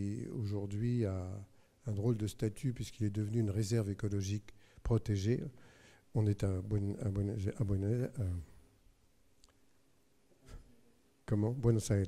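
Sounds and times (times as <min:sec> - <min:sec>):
man's voice: 0:06.2 - 0:08.5, 0:11.3 - 0:12.0.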